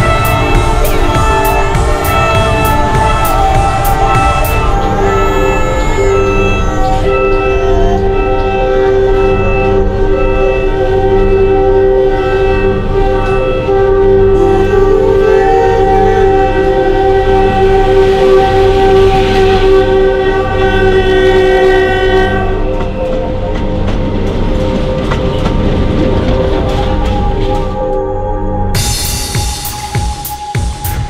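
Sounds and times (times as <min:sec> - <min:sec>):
train wagons rolling on rails: 0:00.0 - 0:30.5
locomotive horn chord: 0:00.0 - 0:31.0.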